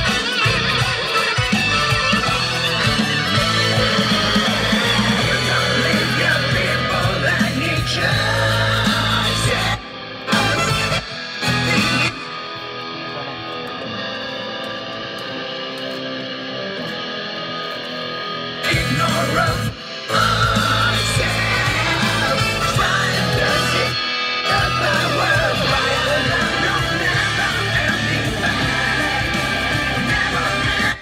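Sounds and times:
heavy rock music with electric guitar: 0:00.0 - 0:31.0.

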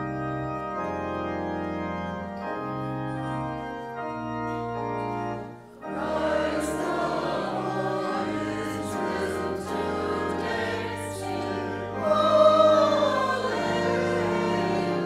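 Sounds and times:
organ notes: 0:00.0 - 0:15.0
mixed choir singing: 0:05.8 - 0:15.0.

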